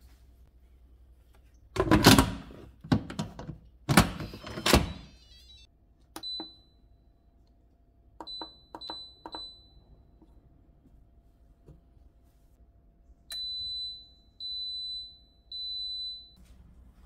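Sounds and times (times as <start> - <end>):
keypad electronic beeps: 4.3 - 6.7, 8.2 - 9.8.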